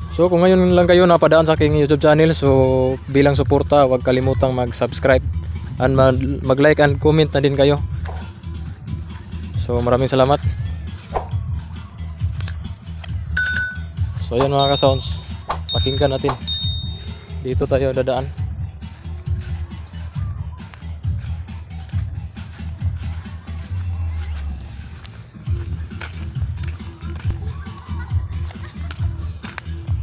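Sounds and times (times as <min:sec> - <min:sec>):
distant bass-heavy music: 0:00.0 - 0:30.0
footsteps on grass and dirt: 0:03.2 - 0:30.0
short high ringing tone: 0:13.4 - 0:14.0, 0:14.6 - 0:17.1.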